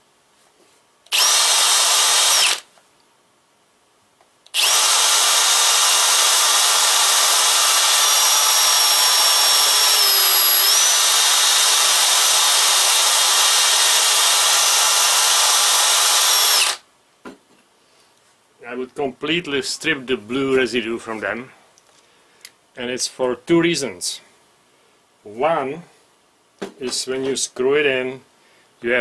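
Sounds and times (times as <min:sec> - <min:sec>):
drill spinning wire brush on metal: 0:01.1 - 0:02.7, 0:04.6 - 0:16.8.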